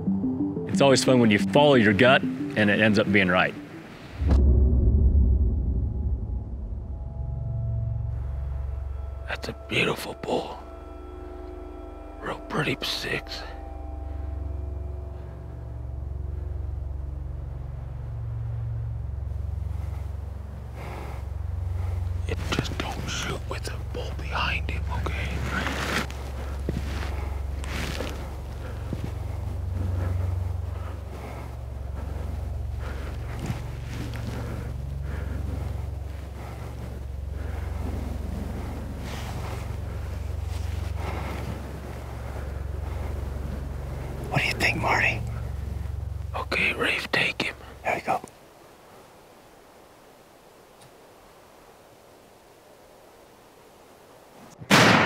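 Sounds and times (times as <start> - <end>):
low steady rumble: 0.0 - 55.0.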